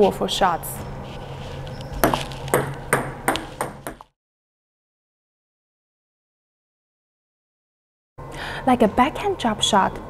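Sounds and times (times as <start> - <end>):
table tennis ball tapping: 1.9 - 4.1.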